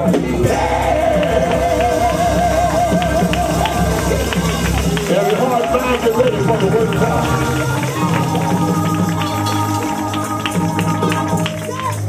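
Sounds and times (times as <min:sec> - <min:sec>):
drums: 0:00.0 - 0:12.0
keyboard: 0:00.0 - 0:12.0
low bass: 0:00.0 - 0:12.0
woman singing with vibrato: 0:07.4 - 0:12.0.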